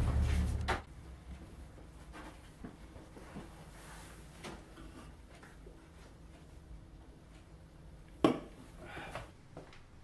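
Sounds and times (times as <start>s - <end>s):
soft scuffing: 0.0s - 4.7s.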